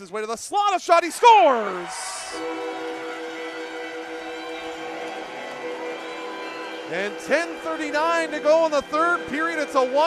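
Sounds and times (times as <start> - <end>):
crowd cheering: 0.6 - 10.0
goal horn chord: 2.3 - 10.0.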